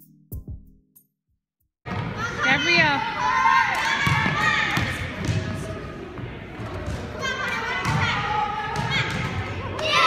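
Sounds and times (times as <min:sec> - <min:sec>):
basketballs bouncing on wooden floor: 0:04.0 - 0:05.6.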